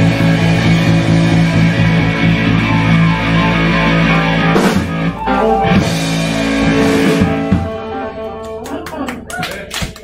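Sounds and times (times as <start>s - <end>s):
rock band chord ringing: 0.0s - 8.7s
audience clapping: 8.2s - 10.0s.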